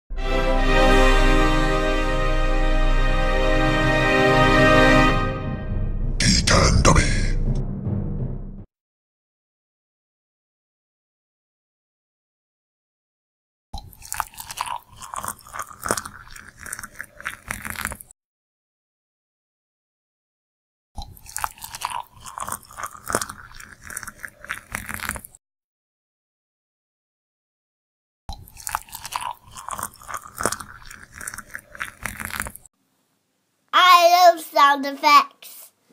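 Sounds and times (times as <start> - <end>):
water pouring into mug: 14.0 - 18.0, 21.2 - 25.3, 28.5 - 32.6.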